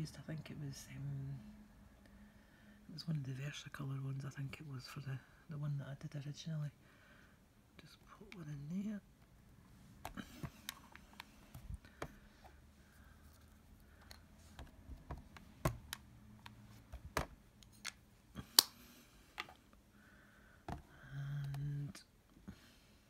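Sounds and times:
rubber stamp clicks and taps: 0:14.6 - 0:18.0.

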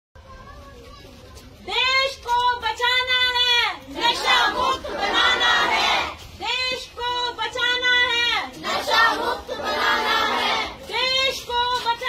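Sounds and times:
crowd shouting in unison: 0:03.9 - 0:06.2, 0:08.6 - 0:10.8.

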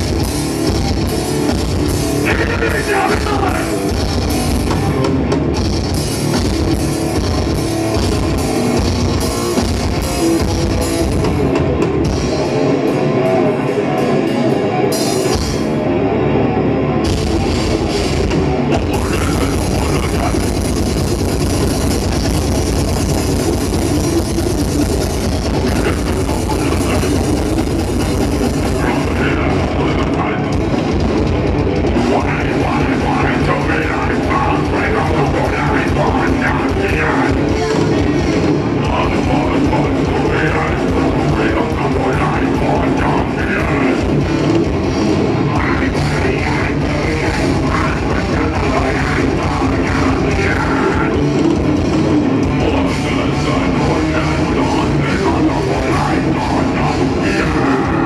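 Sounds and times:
death metal band playing: 0:00.0 - 0:58.0.

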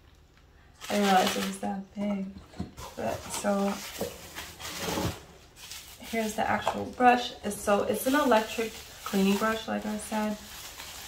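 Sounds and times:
bubble wrap rustling: 0:00.8 - 0:01.8, 0:02.8 - 0:11.0.

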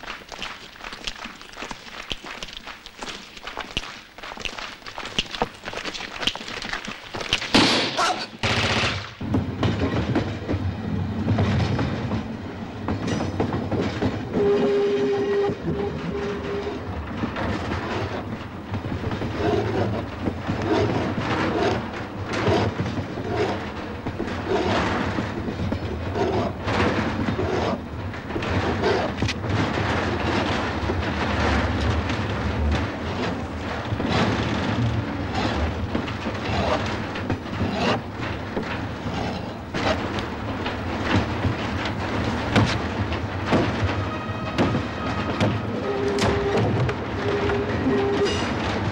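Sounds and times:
freight train wagons rattling: 0:00.0 - 0:48.9.

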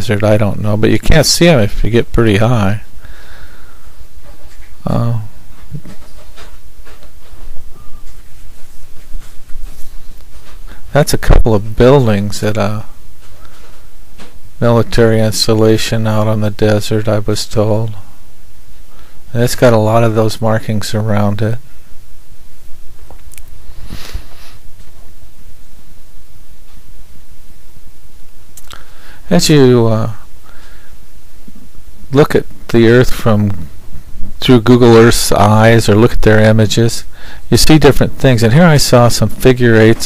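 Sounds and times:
low hum: 0:00.0 - 0:40.0
steady hiss: 0:00.0 - 0:40.0
short rustle: 0:05.4 - 0:10.9, 0:23.5 - 0:25.2
faint short puffs: 0:23.6 - 0:24.7.

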